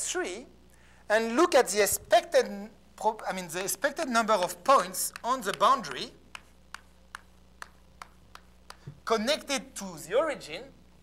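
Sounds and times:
chalk tapping on a blackboard: 4.4 - 9.0.

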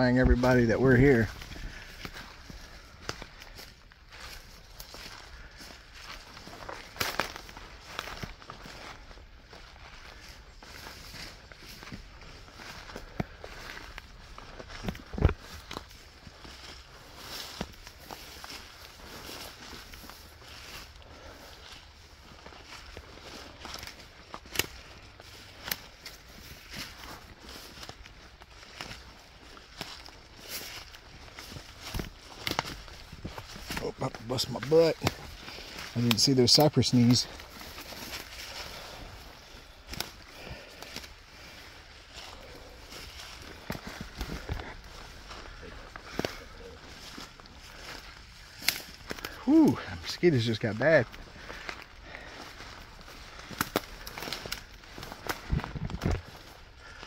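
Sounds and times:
footsteps through dry leaves: 0.0 - 57.0
twigs snapping: 1.4 - 9.1, 10.1 - 49.6, 51.0 - 57.0.

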